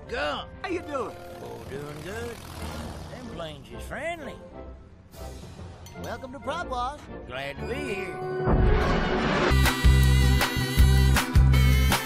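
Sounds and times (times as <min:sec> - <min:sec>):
propeller airplane engine drone: 0:00.6 - 0:03.8.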